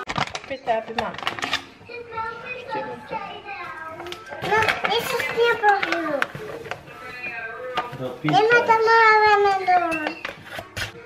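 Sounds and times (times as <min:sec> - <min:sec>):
young child talking: 0:01.9 - 0:06.3, 0:08.3 - 0:11.0.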